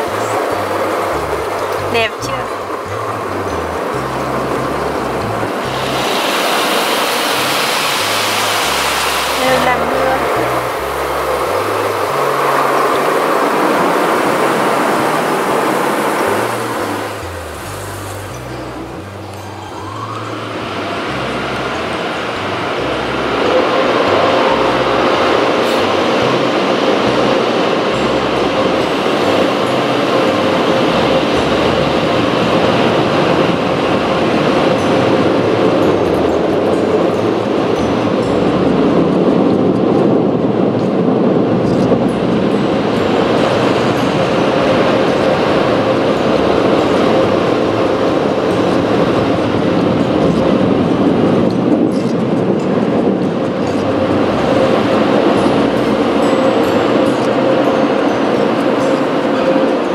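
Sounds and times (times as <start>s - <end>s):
car wash spraying water: 0.0s - 39.0s
hissing spray: 5.6s - 12.9s.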